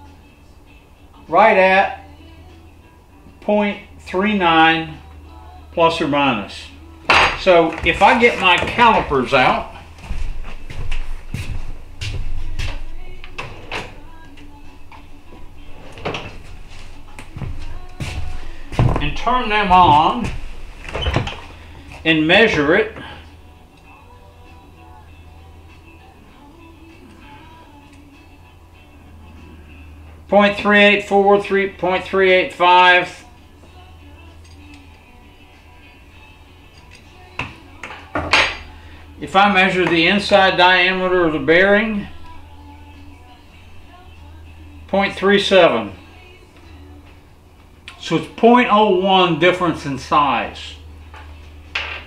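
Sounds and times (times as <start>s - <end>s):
faint background music: 0.0s - 52.0s
low steady hum: 0.0s - 52.0s.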